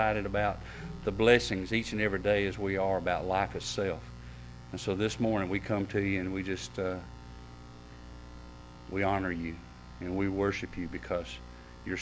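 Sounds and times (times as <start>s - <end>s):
buzzy electrical hum: 0.0s - 12.0s.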